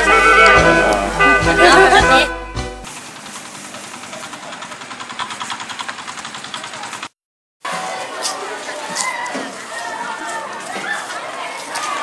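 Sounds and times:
engine idling: 0.0 - 7.1.

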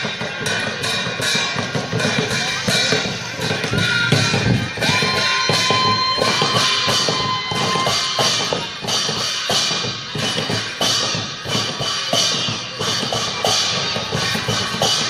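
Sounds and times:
barrel drums beaten: 0.0 - 15.0
metallic ringing: 0.1 - 15.0.

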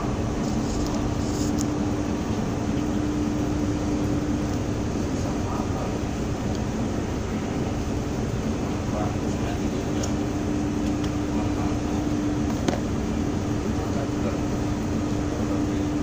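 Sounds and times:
ship engine hum: 0.0 - 16.0
wind: 0.0 - 16.0.

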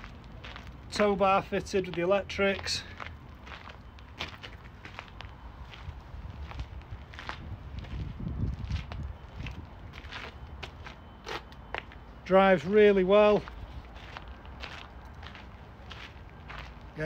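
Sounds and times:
footsteps on gravel: 0.0 - 17.0.

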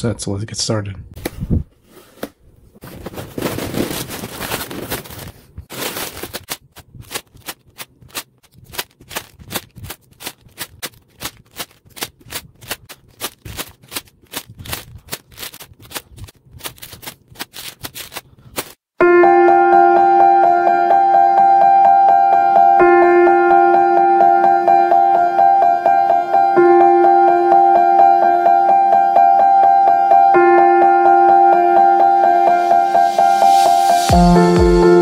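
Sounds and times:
cardboard box opening rustle: 2.8 - 7.7
plastic bags rattling and crinkling: 2.8 - 18.8.

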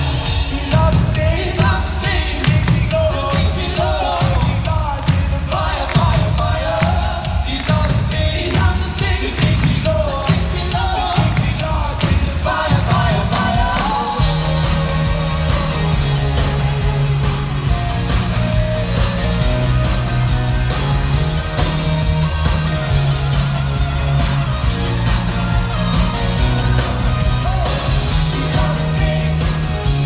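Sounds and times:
person singing: 0.0 - 17.4, 26.7 - 30.0
live pop-rock band: 0.0 - 30.0.

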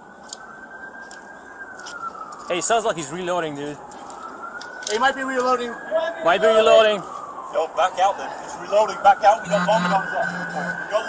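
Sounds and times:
background noise: 0.0 - 11.0
police siren wailing: 0.4 - 11.0.

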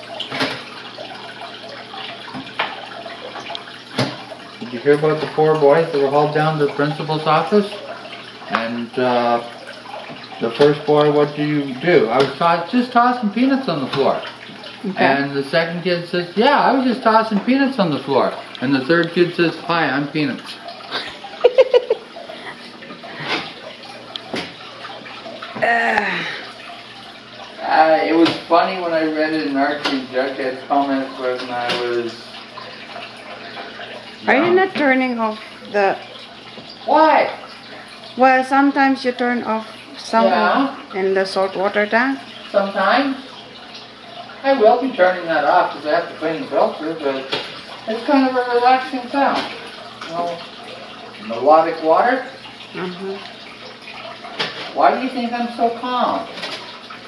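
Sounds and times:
aquarium filter water trickling: 0.0 - 57.0
person's voice: 14.8 - 20.4, 39.4 - 41.1.

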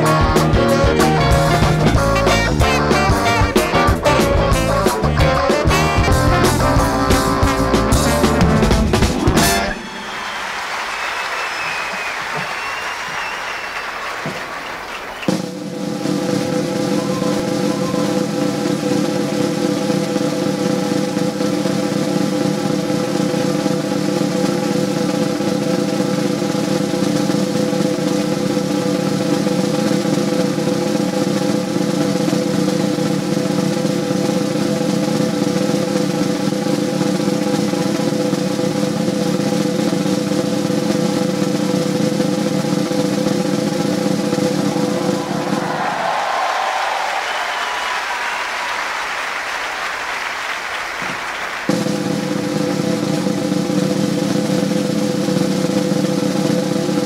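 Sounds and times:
band holding a chord: 0.0 - 10.4
band drum roll: 0.0 - 57.0
applause: 9.3 - 15.5, 44.6 - 52.2.

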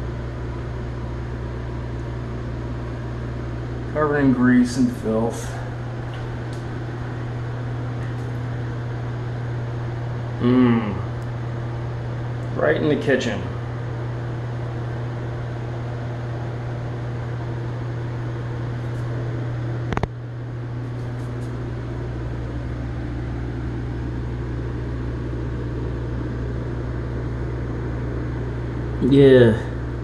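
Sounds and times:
deep low hum: 0.0 - 30.0
machine hum with low drone: 0.0 - 30.0.

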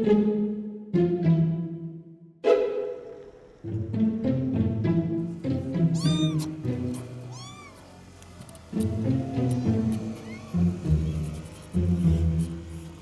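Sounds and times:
background music with low strings: 0.0 - 13.0
cat meowing: 6.0 - 8.0, 9.1 - 11.2.

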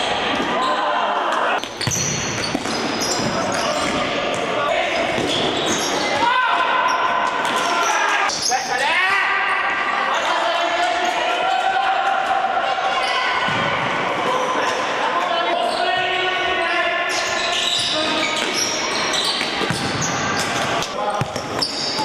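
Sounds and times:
ball bouncing on hard floor: 1.6 - 3.5
players shouting: 3.0 - 19.2.

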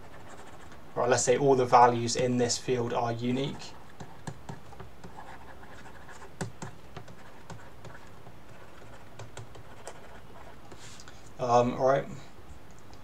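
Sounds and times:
stylus tapping and scratching: 3.3 - 11.2.

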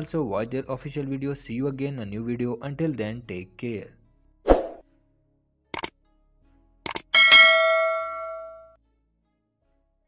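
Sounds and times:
quick clicks: 6.9 - 7.1
bell chime: 7.2 - 8.8.

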